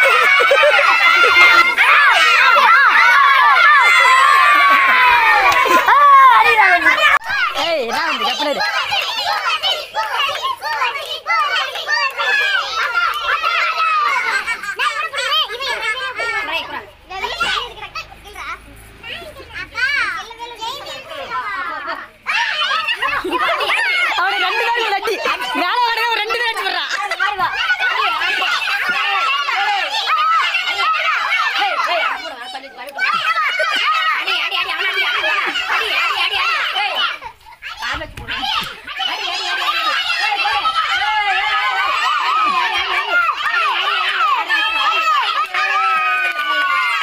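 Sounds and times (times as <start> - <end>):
children shouting: 0.0 - 47.0.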